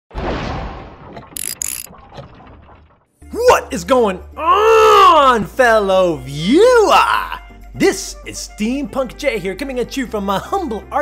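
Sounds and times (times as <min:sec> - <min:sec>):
sudden hit: 0:00.1 - 0:01.2
short bright bursts: 0:01.4 - 0:01.9.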